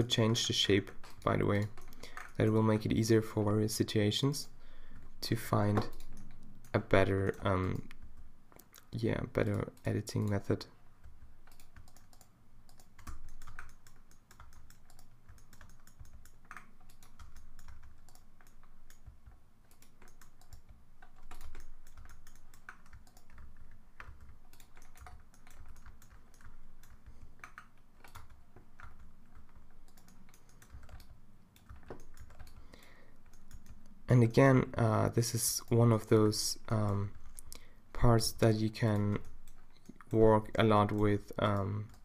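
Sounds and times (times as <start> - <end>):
keyboard and mouse clicking: 0.0 - 3.0, 5.0 - 34.0, 38.8 - 42.0.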